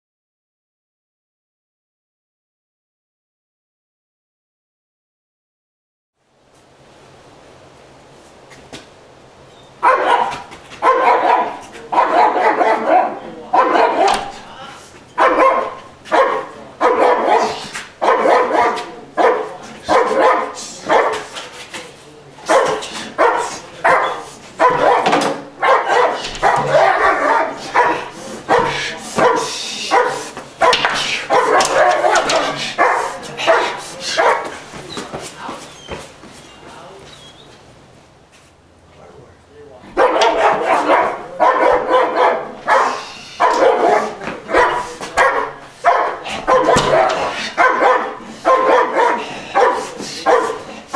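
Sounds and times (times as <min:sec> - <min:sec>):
dog barking aggressively: 0:09.8 - 0:14.5, 0:15.1 - 0:21.4, 0:22.4 - 0:34.8, 0:39.9 - 0:50.9.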